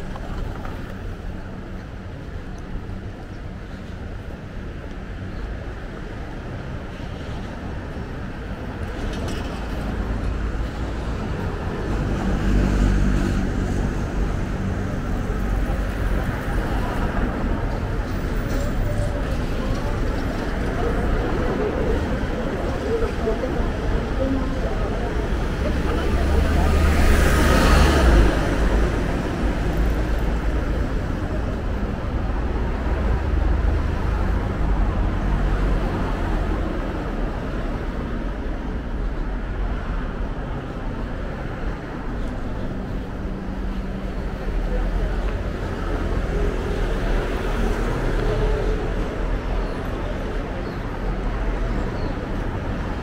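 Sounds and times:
road traffic rumble: 0.0s - 53.0s.

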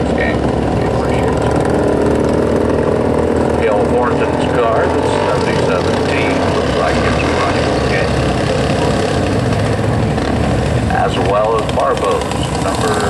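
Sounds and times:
four-wheeler idling: 0.0s - 13.0s
race car engines idling: 0.0s - 13.0s.

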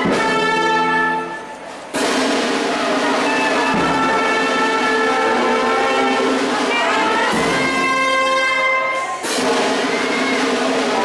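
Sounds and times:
brass band playing a march: 0.0s - 11.0s.

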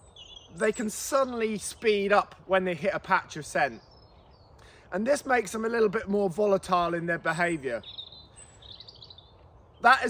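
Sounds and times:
songbird chirping: 0.0s - 10.0s
man talking: 0.5s - 3.8s, 4.9s - 7.9s, 9.8s - 10.0s.

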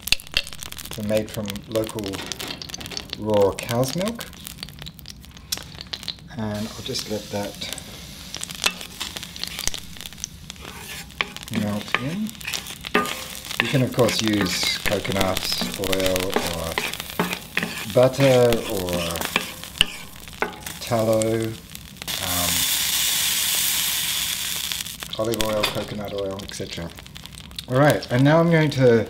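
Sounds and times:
wooden spoon in a pan: 0.0s - 22.5s, 25.1s - 29.0s
ghee sizzling in a skillet: 0.0s - 29.0s.

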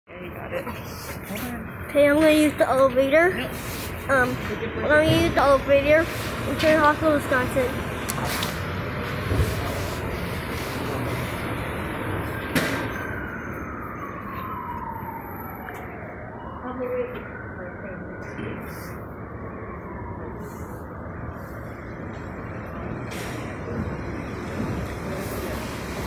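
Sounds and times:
siren wailing: 8.6s - 26.0s.

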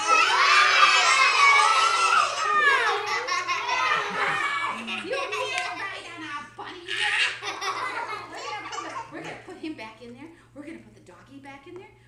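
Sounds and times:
laughter: 2.8s - 5.8s, 7.2s - 9.3s.

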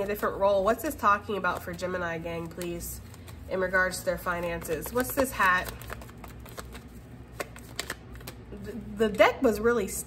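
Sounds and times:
cards being shuffled: 1.3s - 8.6s.

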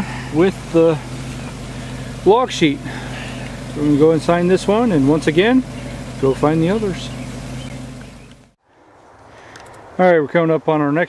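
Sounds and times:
steady low hum: 0.0s - 8.6s.

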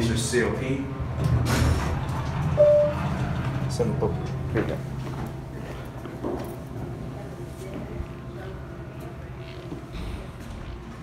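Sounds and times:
elevator chime beep: 2.6s - 3.1s.

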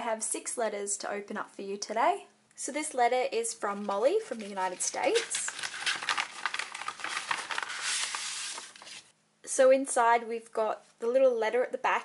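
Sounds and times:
paper envelope rustling and crinkling: 3.7s - 9.1s
papers sliding out: 4.7s - 9.1s.

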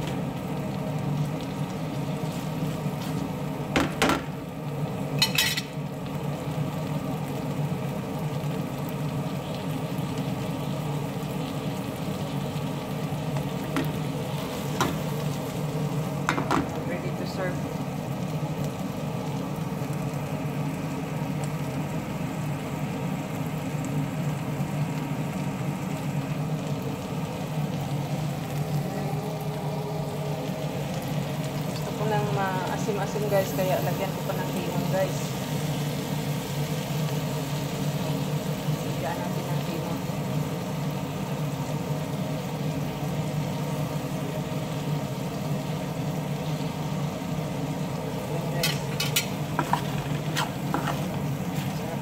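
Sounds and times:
shrimps sizzling in a frying pan: 0.0s - 52.0s.

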